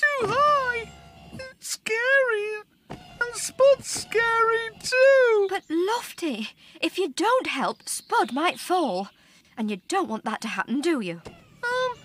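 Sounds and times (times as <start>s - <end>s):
cartoon character moaning: 11.6s - 12.0s.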